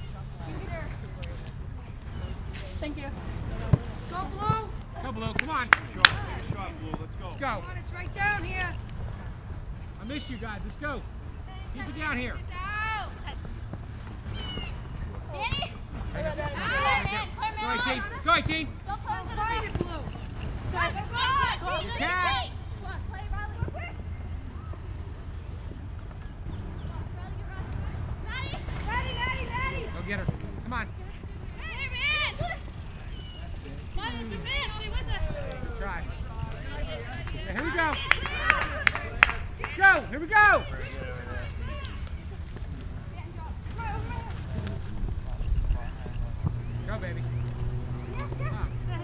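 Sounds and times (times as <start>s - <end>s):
distant shouts: 0.0s - 49.0s
distant voices calling out: 0.0s - 49.0s.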